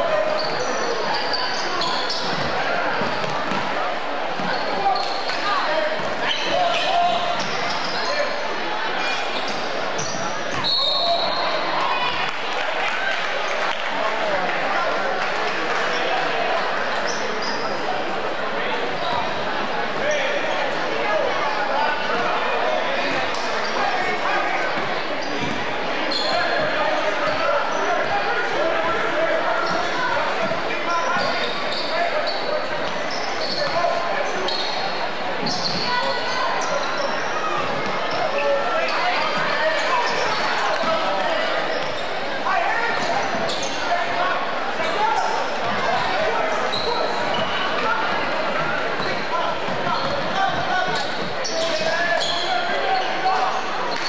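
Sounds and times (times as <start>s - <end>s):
sneakers squeaking: 0.0s - 12.3s, 15.8s - 18.1s, 18.7s - 20.8s, 21.5s - 54.0s
spectators chattering: 0.0s - 54.0s.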